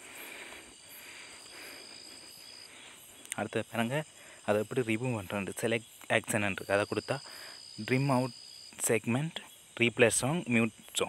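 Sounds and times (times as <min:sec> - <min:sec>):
faint background hiss: 0:00.0 - 0:11.0
man speaking: 0:03.3 - 0:07.2, 0:07.8 - 0:11.0.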